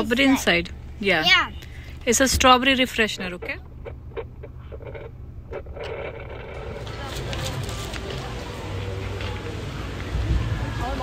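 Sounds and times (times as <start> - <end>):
car cabin rumble: 0.0 - 11.0
murmur of voices outdoors: 0.0 - 11.0.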